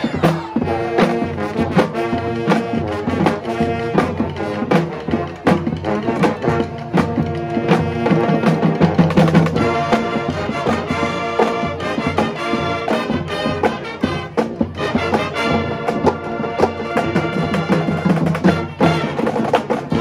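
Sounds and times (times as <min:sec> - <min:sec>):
brass horns playing: 0:00.0 - 0:20.0
drum line beat: 0:00.0 - 0:20.0.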